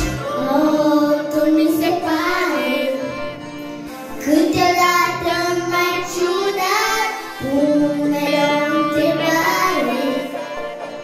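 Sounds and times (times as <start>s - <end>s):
girl singing a pop song: 0.0s - 3.3s, 4.2s - 10.6s.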